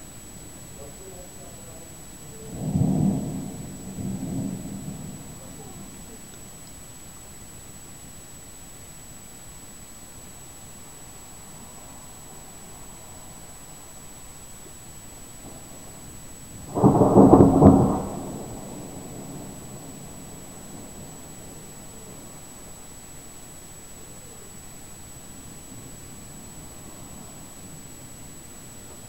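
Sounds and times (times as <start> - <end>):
distant thunder rumbling: 0.8 - 6.6, 15.0 - 24.5.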